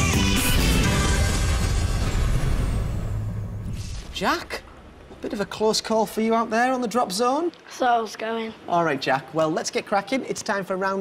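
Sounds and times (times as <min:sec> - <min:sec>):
game show music: 0:00.0 - 0:03.5.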